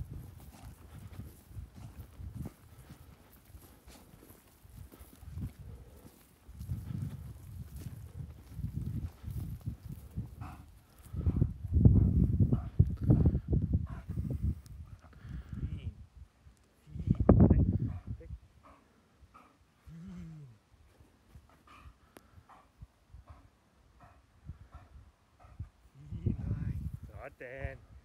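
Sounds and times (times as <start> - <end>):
footsteps on loose soil: 0.0 - 12.7.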